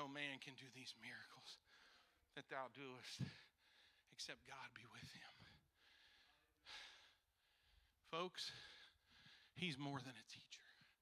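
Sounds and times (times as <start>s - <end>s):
breath into microphone: 5.3s - 9.6s.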